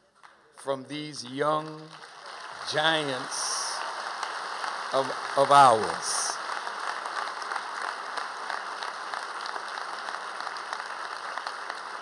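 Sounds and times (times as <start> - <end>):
audience applauding: 1.2 - 12.0.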